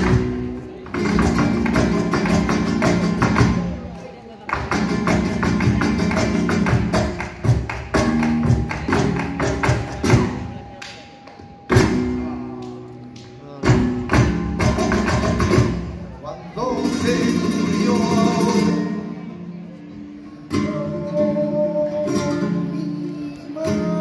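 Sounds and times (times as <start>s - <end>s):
flamenco guitar chords: 0.0s - 24.0s.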